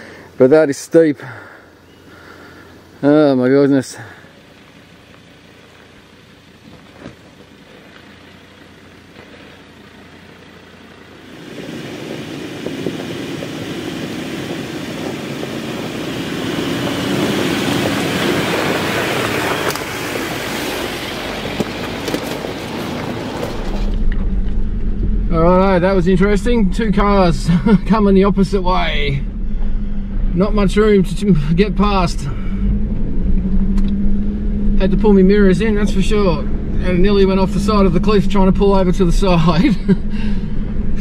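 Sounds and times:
low engine rumble: 0:00.0 - 0:41.0
tyres crunching on gravel: 0:02.8 - 0:25.0.

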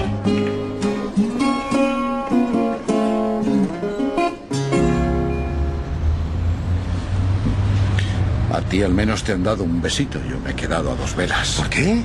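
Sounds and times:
low rumble of city traffic: 0:00.0 - 0:12.0.

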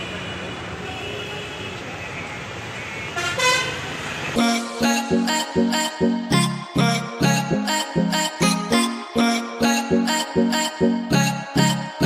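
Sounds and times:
road traffic hum: 0:00.0 - 0:04.9
vehicle horn honking: 0:02.8 - 0:04.3.

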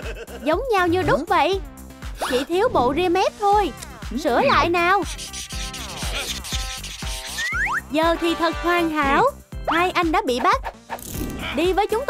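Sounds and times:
background music with beat: 0:00.0 - 0:02.4, 0:03.4 - 0:10.8
marker pen scratching on skin: 0:04.6 - 0:07.7.

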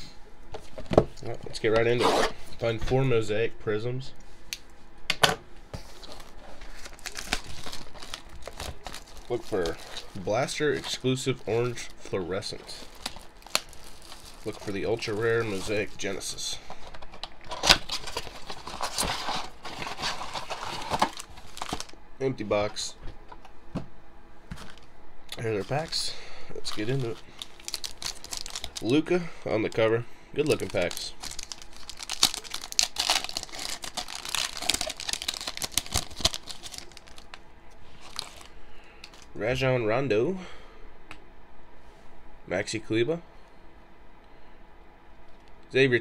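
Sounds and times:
foil wrapper tearing and crinkling: 0:05.9 - 0:16.2, 0:17.5 - 0:21.9, 0:26.7 - 0:29.0, 0:30.4 - 0:39.3.

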